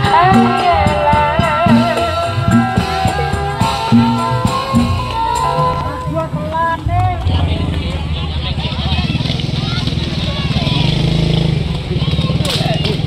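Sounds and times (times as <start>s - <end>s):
people talking: 0.0s - 13.0s
small motorcycle engine running: 0.0s - 13.0s.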